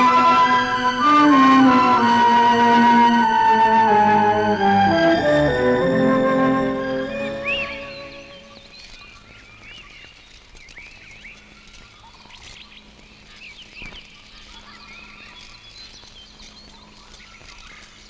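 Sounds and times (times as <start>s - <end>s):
birds chirping: 2.6s - 17.6s.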